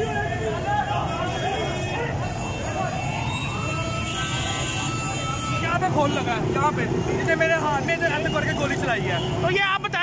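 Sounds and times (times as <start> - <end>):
street traffic: 0.0 - 10.0
voices: 0.0 - 10.0.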